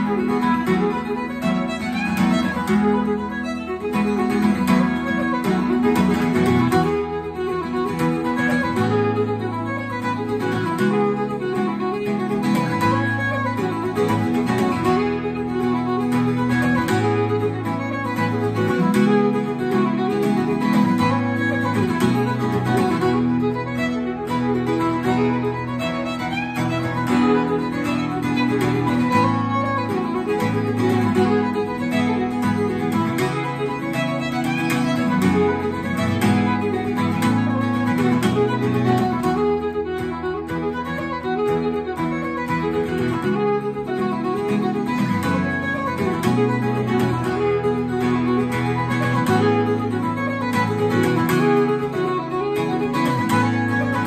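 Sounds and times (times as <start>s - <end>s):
acoustic guitar strumming: 0.0s - 54.0s
fiddle playing a reel: 0.0s - 54.0s.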